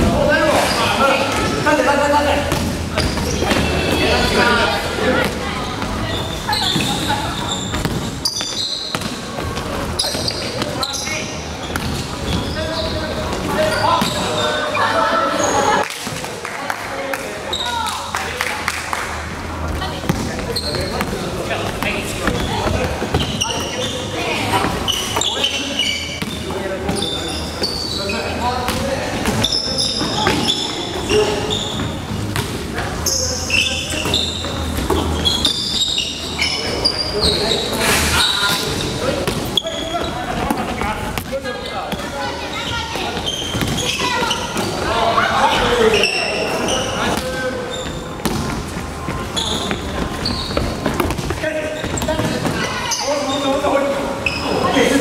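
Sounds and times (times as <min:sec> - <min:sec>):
sneakers squeaking: 0:00.0 - 0:16.4, 0:17.2 - 0:55.0.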